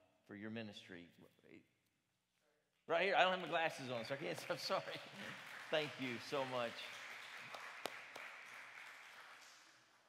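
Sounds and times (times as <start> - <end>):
light applause: 3.2 - 10.0
single claps: 3.4 - 9.8.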